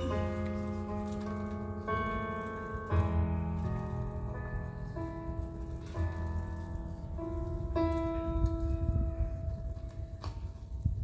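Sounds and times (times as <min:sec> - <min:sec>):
electric keyboard chords: 0:00.0 - 0:11.0.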